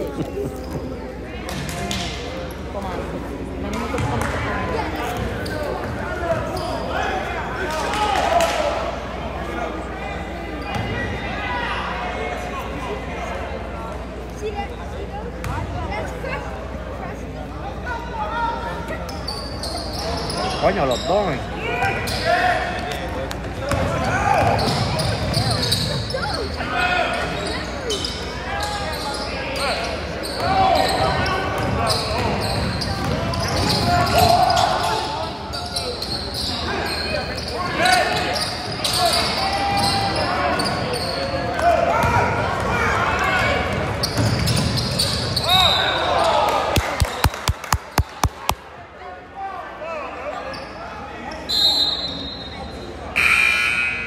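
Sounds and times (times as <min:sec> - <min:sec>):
spectators' voices: 0:00.0 - 0:51.3.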